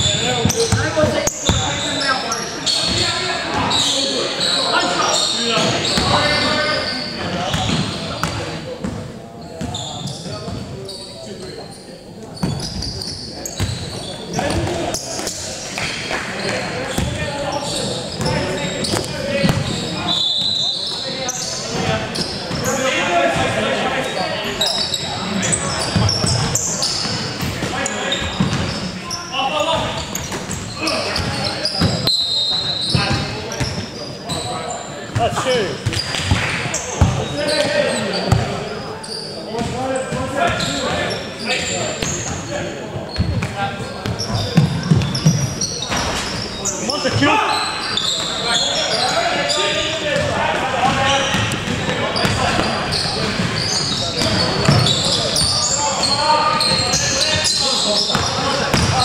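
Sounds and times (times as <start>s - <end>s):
players calling out: 0.0s - 8.6s, 12.4s - 59.0s
sneakers squeaking: 0.0s - 59.0s.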